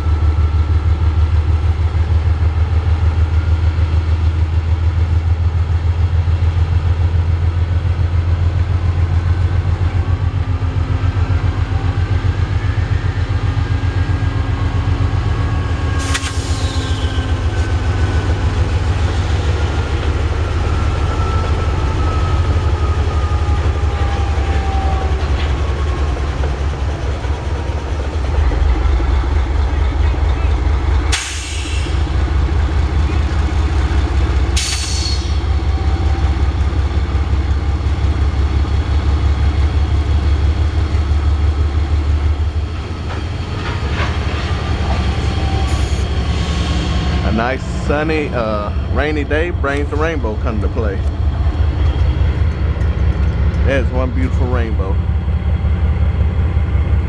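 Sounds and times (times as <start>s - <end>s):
diesel locomotive throbbing: 0.0s - 57.0s.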